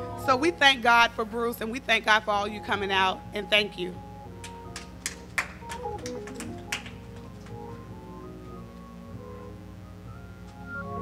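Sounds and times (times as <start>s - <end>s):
quiet keyboard music: 0.0s - 11.0s.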